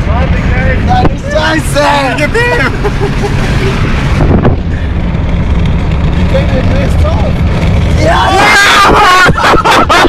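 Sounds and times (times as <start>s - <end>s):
road rumble: 0.0s - 10.0s
wind buffeting through car window: 3.7s - 5.2s.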